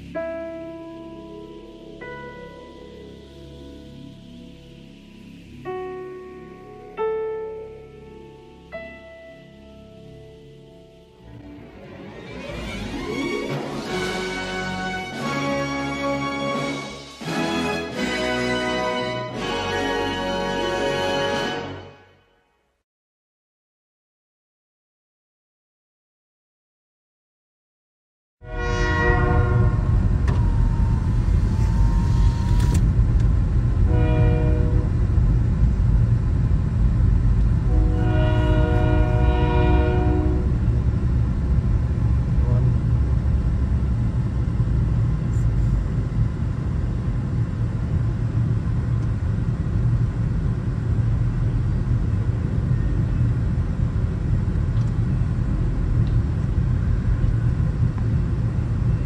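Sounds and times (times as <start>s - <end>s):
freight train horn blasts: 28.4s - 32.0s, 33.8s - 35.1s, 37.6s - 40.9s, 42.3s - 43.2s
freight train rumbling: 28.5s - 59.0s.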